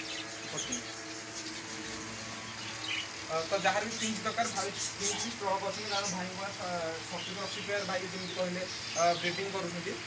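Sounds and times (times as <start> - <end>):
finches chirping: 0.0 - 10.0
steady background hum: 0.0 - 10.0.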